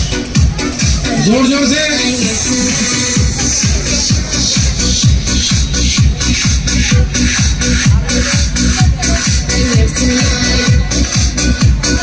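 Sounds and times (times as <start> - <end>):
electronic dance music: 0.0 - 12.0
steady kick drum: 0.0 - 12.0.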